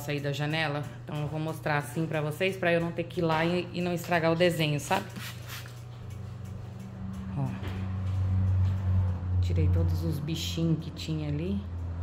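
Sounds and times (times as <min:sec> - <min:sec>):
steady low hum: 0:05.6 - 0:12.0.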